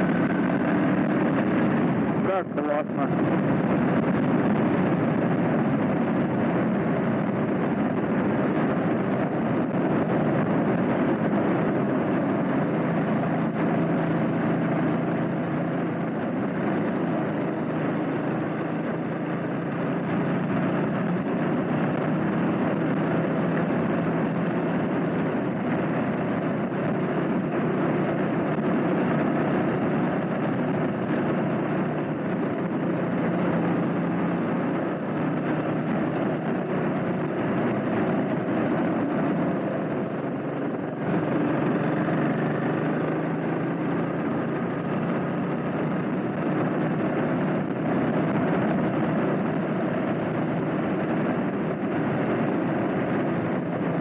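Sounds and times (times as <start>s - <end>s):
motorcycle engine cruising: 0.0s - 54.0s
wind and road noise: 0.0s - 54.0s.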